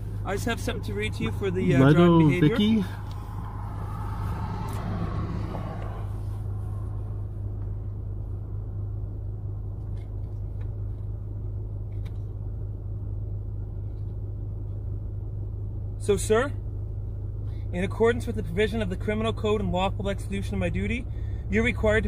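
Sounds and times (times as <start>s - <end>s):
car engine idling: 0.0s - 22.0s
rushing noise: 2.9s - 7.4s.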